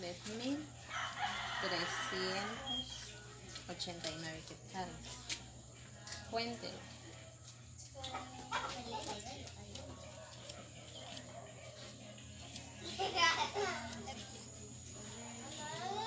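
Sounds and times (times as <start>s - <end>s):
rooster crowing: 0.9s - 3.1s.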